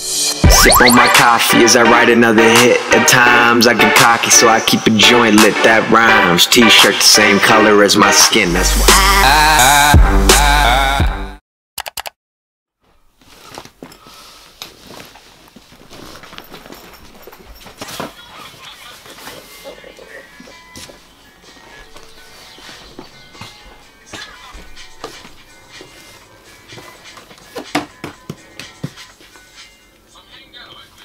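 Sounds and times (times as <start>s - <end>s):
quiet background music with vocals: 0.1s - 10.9s, 15.9s - 31.0s.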